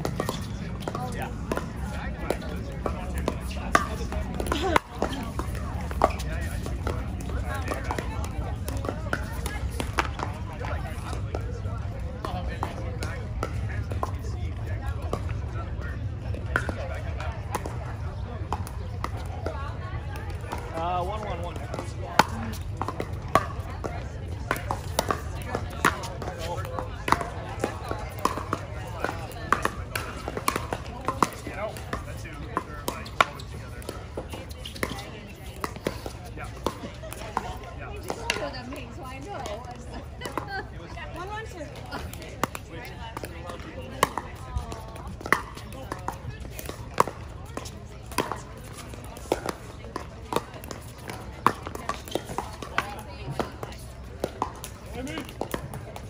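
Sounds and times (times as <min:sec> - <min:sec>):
paddles hitting plastic ball: 0:00.0 - 0:11.6, 0:20.3 - 0:40.5, 0:41.2 - 0:56.0
chatter of voices: 0:00.0 - 0:56.0.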